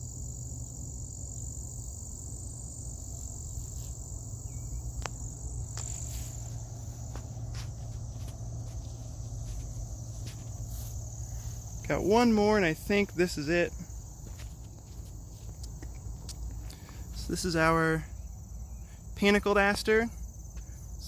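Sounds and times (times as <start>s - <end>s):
crickets trilling: 0.0s - 21.0s.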